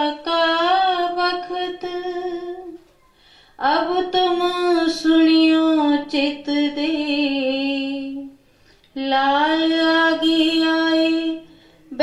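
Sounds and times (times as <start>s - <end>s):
solo voice singing devotional verses: 0.0s - 2.8s, 3.6s - 8.4s.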